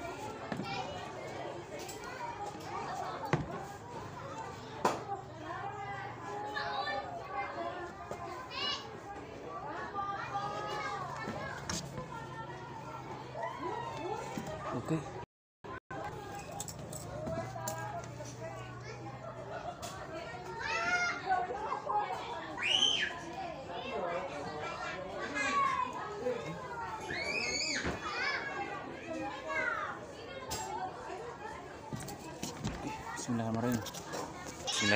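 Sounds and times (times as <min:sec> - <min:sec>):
small children chattering: 0:00.0 - 0:34.9.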